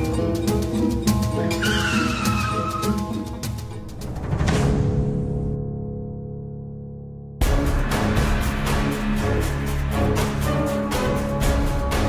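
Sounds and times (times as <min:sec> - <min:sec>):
dramatic background score: 0:00.0 - 0:12.0.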